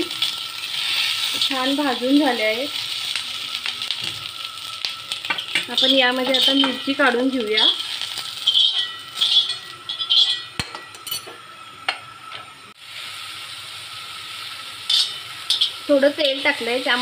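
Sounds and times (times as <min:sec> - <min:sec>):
oil sizzling in a pan: 0:00.0 - 0:17.0
spoon scraping a pan: 0:05.2 - 0:11.4, 0:14.9 - 0:16.5
metal clink: 0:08.4 - 0:11.4.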